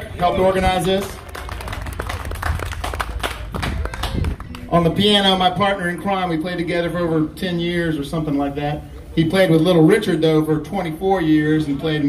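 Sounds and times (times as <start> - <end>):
small audience clapping: 0.7 - 4.7.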